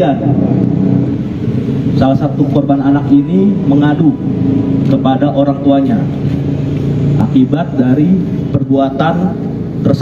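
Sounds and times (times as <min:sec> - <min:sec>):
man speaking into microphone: 0:00.0 - 0:00.6, 0:01.9 - 0:06.3, 0:07.1 - 0:10.0
low outdoor rumble: 0:00.0 - 0:10.0.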